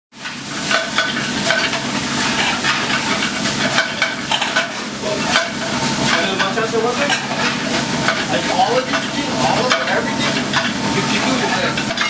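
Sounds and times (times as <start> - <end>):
greens sizzling in pans: 0.1 - 12.0
metallic clinks of pans and utensils: 0.7 - 12.0.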